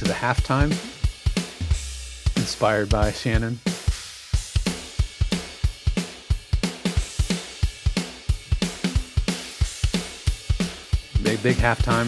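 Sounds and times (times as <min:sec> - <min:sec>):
rock drum groove: 0:00.0 - 0:12.0.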